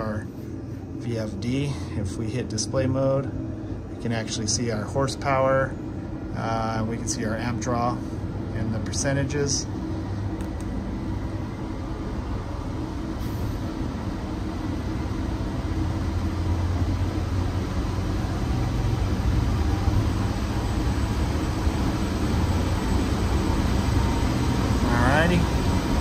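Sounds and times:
blower hum and air rush: 0.0 - 26.0.

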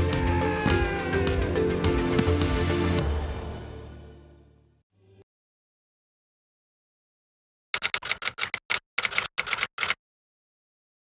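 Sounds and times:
keystroke clicks: 7.8 - 10.0.

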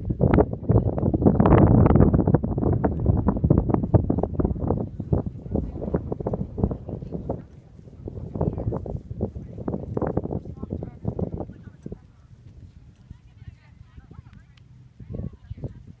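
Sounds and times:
indistinct talking: 3.8 - 16.0.

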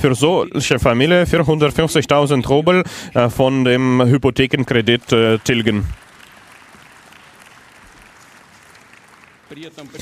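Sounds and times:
audience applause: 4.8 - 10.0.

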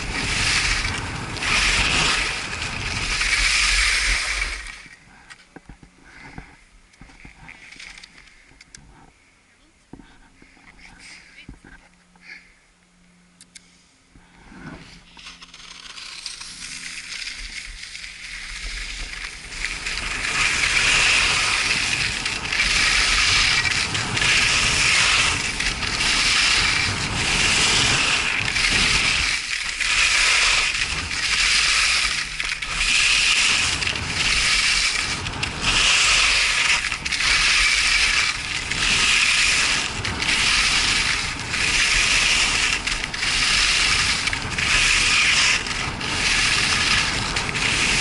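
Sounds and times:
skis scraping on snow: 0.0 - 5.0, 14.4 - 48.0.

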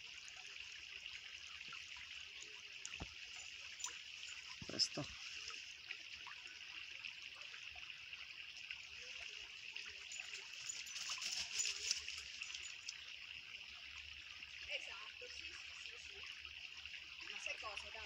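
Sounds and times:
stream trickling over stones: 0.0 - 18.0.

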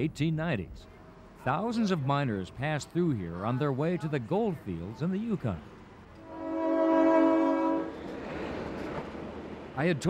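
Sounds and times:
train horn chord: 6.2 - 8.0.

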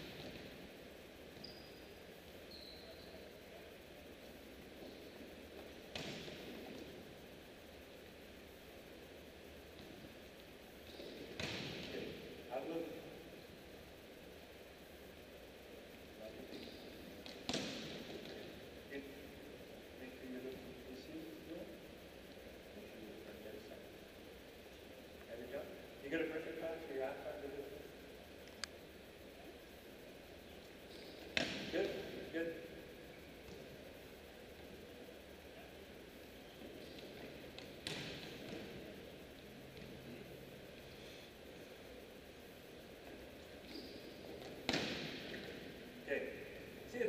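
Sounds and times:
volleyball smacks echoing: 5.9 - 7.0, 10.9 - 12.2, 16.6 - 18.5, 31.2 - 32.2, 36.9 - 38.9, 44.4 - 45.7.

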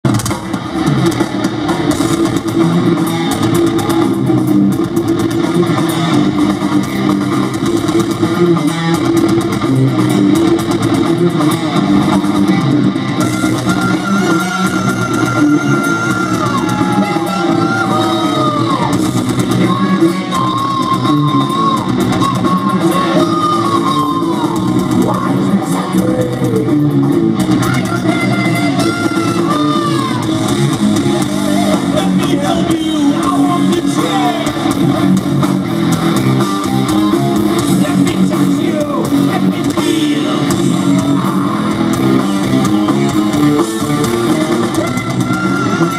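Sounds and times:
heavy metal band playing live: 0.0 - 45.9
melodic guitar line with pitch bends: 0.1 - 45.9.

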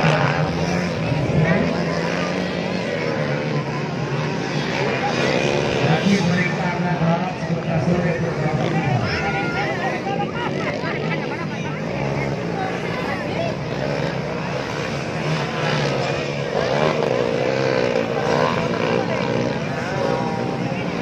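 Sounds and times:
dirt bike engines racing: 0.0 - 21.0
voices: 0.0 - 21.0.

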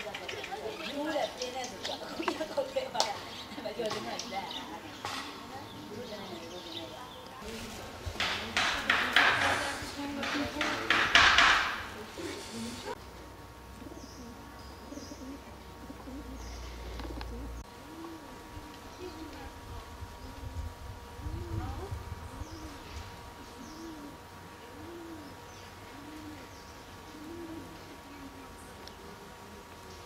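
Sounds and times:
dove cooing: 0.0 - 6.9, 13.8 - 30.0
small birds chirping: 0.0 - 7.5, 13.8 - 17.8, 18.6 - 30.0.

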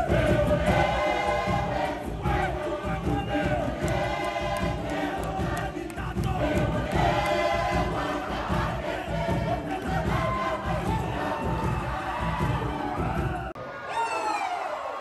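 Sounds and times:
dense continuous beat: 0.0 - 13.6
group chanting and singing: 0.0 - 13.6.

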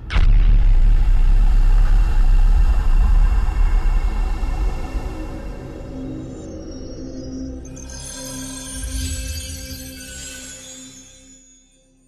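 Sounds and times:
deep steady drone: 0.0 - 8.3.

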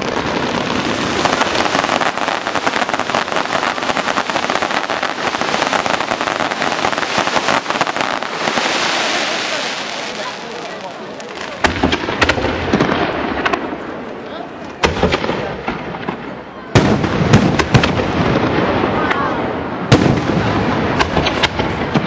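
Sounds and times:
fireworks popping and banging: 0.0 - 22.0.

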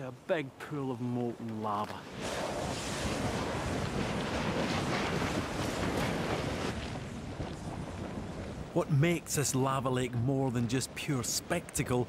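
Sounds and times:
molten lava churning: 1.3 - 12.0.

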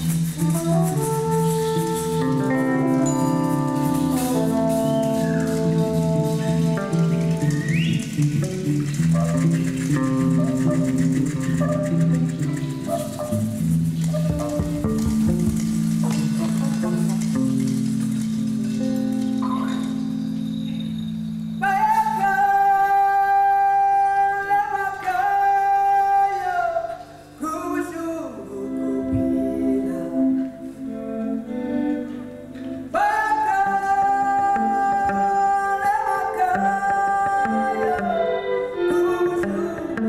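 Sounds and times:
live band with marimbas: 0.0 - 22.7.

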